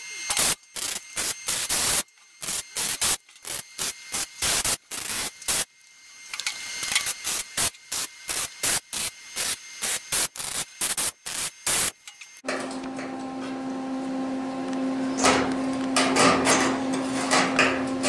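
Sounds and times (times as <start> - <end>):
welder crackling buzz: 0.0 - 12.5.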